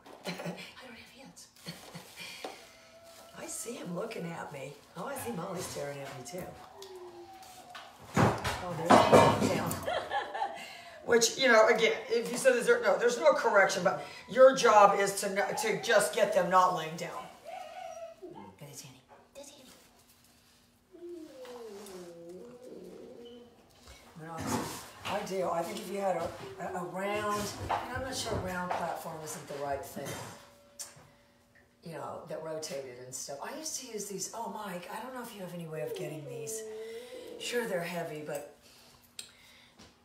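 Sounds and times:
dog whining: 2.5 - 4.0, 5.0 - 9.8, 13.0 - 18.5, 20.8 - 23.8, 35.8 - 37.8
man laughing: 9.8 - 10.8.

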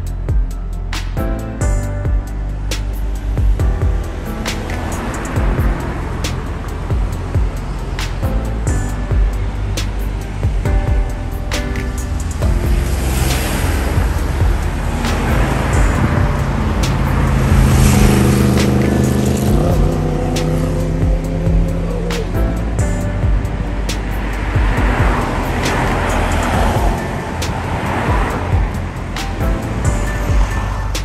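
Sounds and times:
background music: 0.0 - 31.0
cars passing by: 0.0 - 31.0.

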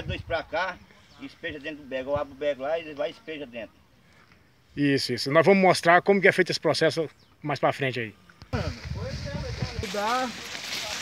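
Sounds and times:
corn stalks and leaves rustling: 8.6 - 11.0.

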